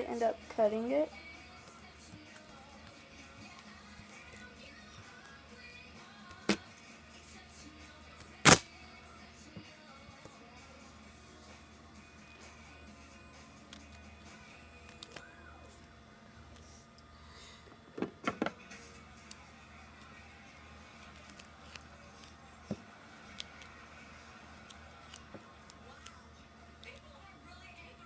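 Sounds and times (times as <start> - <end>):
faint background music: 0.0 - 28.0
duct tape and scissors handling: 8.1 - 8.7, 14.7 - 15.3, 21.0 - 22.3, 24.6 - 26.2.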